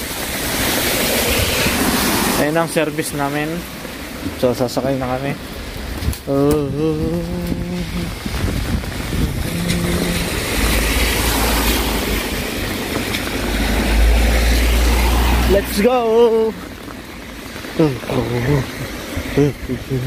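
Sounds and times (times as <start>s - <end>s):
tyres hissing on wet road: 0.0s - 20.0s
car engine rumble: 5.4s - 20.0s.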